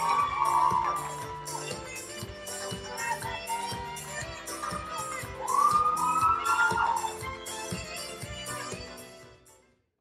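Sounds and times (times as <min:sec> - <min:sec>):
music with steady beat: 0:00.0 - 0:09.5.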